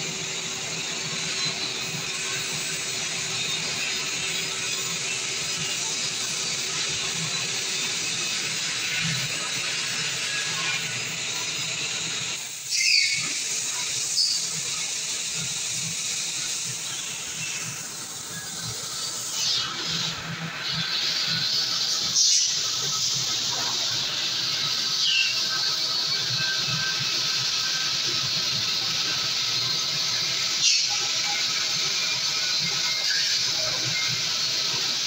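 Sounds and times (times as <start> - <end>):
laser cutter hissing: 0.0 - 35.0.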